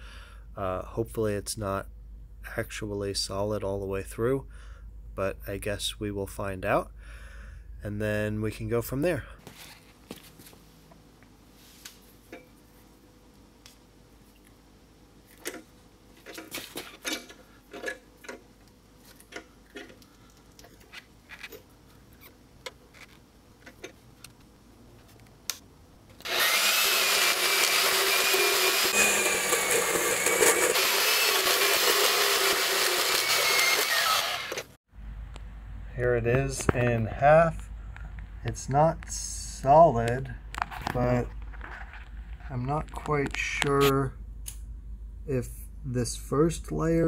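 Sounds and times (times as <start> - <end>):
bandsaw cutting metal tube: 26.2 - 34.8.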